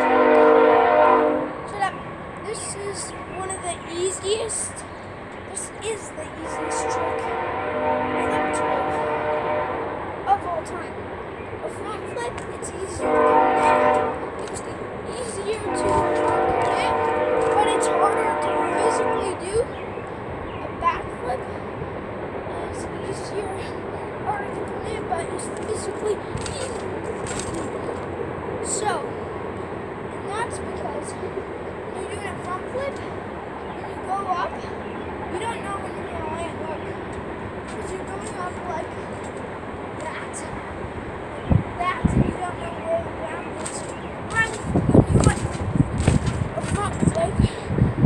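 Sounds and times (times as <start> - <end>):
horn chord: 0.0 - 1.7, 6.5 - 10.1, 13.0 - 14.3, 15.6 - 19.4.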